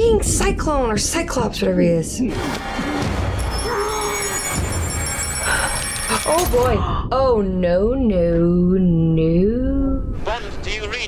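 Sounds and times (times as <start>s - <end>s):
film score: 0.0s - 11.0s
low rumble: 6.5s - 10.3s.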